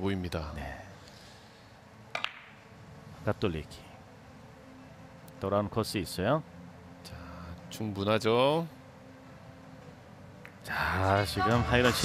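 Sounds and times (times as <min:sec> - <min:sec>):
billiard balls clicking: 0:02.1 - 0:02.6.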